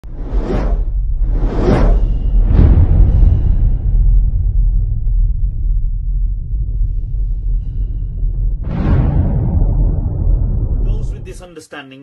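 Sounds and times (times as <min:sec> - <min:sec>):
cinematic whooshes: 0:00.0 - 0:11.4
deep rumble: 0:00.0 - 0:11.5.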